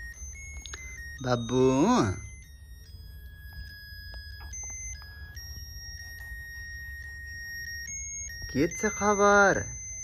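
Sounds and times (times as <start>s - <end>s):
crib mobile electronic tune: 0.0s - 10.0s.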